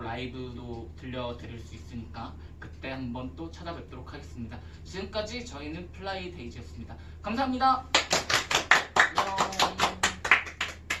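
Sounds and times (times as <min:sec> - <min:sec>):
people clapping: 0:07.9 - 0:11.0.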